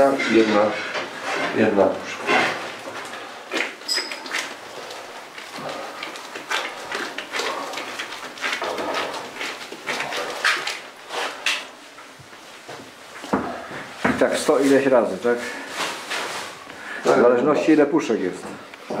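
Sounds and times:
hands packing meat into cans: 0.0s - 19.0s.

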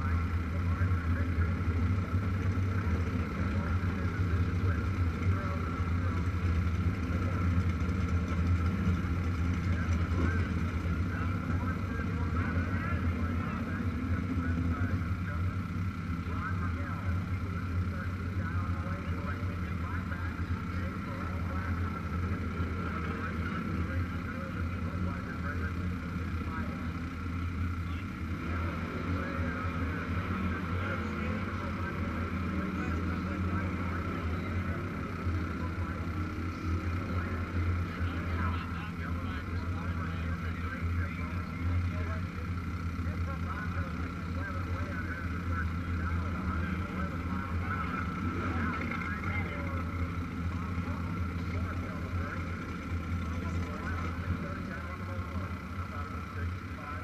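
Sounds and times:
indistinct voices: 0.0s - 57.0s
motorcycle engine idling: 0.0s - 57.0s.

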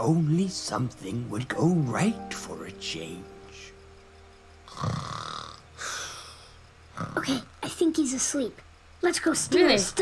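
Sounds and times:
cartoon snoring: 4.7s - 6.0s, 6.9s - 7.5s.

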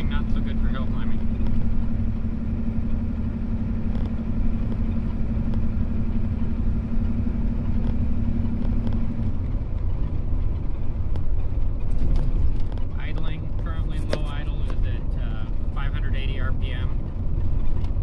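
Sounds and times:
diesel engine rumble: 0.0s - 18.0s
road noise: 0.0s - 18.0s.

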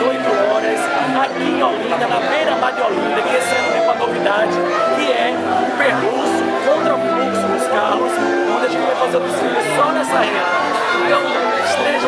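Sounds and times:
background music: 0.0s - 12.0s
crowd chatter: 0.0s - 12.0s
man talking: 0.0s - 12.0s.

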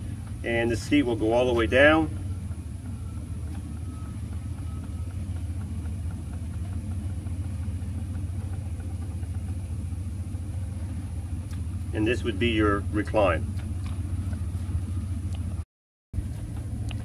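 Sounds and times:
steady low hum: 0.0s - 15.6s, 16.2s - 17.0s.

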